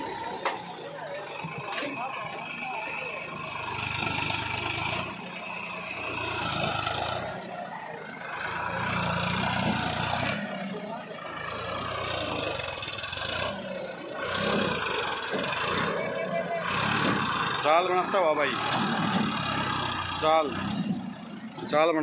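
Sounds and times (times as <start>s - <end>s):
tractor diesel engine revving: 0.0s - 22.0s.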